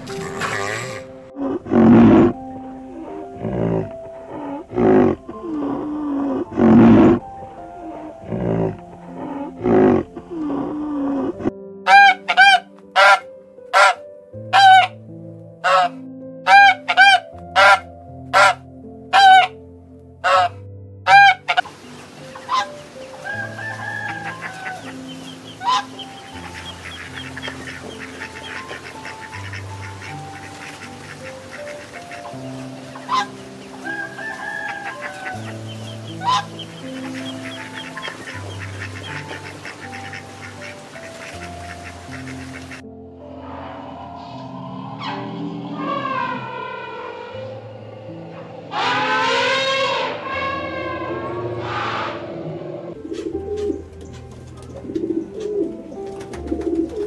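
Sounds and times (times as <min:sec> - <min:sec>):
soft piano music: 0:00.0 - 0:57.0
bird calling loudly: 0:11.9 - 0:13.2, 0:13.8 - 0:14.9, 0:15.6 - 0:15.9, 0:16.5 - 0:19.5, 0:20.2 - 0:20.5, 0:21.1 - 0:42.8, 0:43.4 - 0:53.8
small birds twittering: 0:21.5 - 0:42.8.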